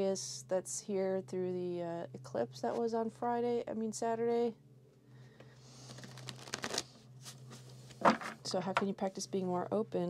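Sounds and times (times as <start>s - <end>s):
faint low hum: 0.0s - 10.0s
cards being shuffled: 5.8s - 8.4s.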